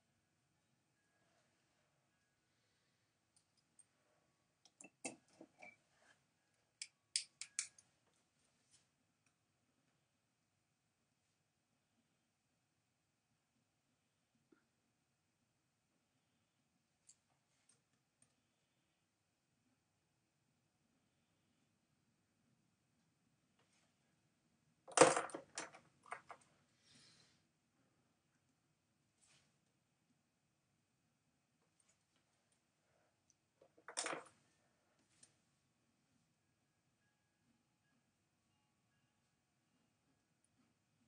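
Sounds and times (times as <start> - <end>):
plastic pens clattering: 33.7 - 34.3.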